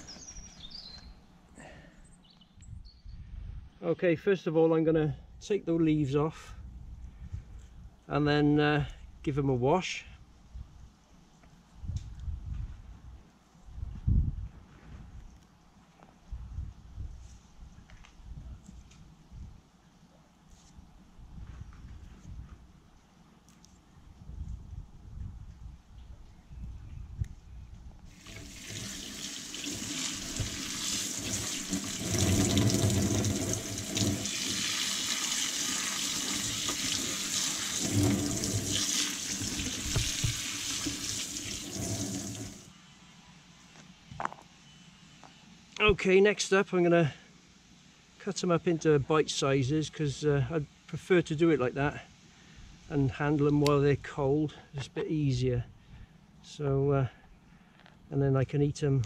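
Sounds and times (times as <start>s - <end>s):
tap water running into sink: 28.2s - 42.7s.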